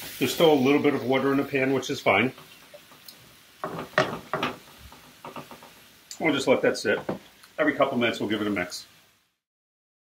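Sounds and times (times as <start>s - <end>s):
tongs scraping a skillet: 0.0s - 7.6s
tongs clacking: 2.2s - 6.2s.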